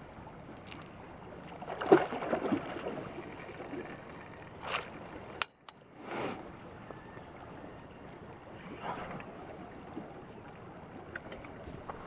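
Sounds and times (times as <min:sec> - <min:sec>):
steady outdoor hiss: 0:00.0 - 0:12.0
fish splashing in water: 0:01.6 - 0:05.0.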